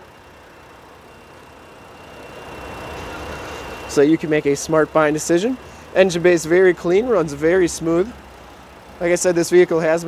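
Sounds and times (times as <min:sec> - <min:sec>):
faint high whine: 0:00.0 - 0:08.0
car engine idling: 0:00.0 - 0:10.0.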